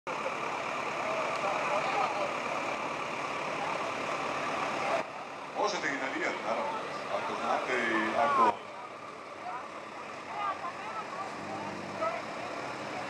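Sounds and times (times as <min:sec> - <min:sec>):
chatter of many voices: 0:00.1 - 0:13.0
steady engine noise: 0:00.1 - 0:13.0.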